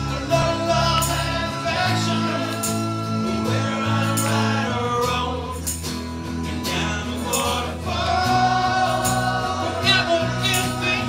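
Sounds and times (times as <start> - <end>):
men singing together: 0.0 - 11.0
strummed acoustic guitars: 0.0 - 11.0.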